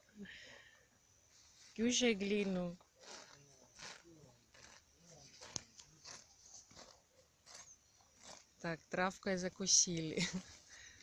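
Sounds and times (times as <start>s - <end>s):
horse grazing: 1.2s - 11.0s
grass tearing: 1.8s - 11.0s.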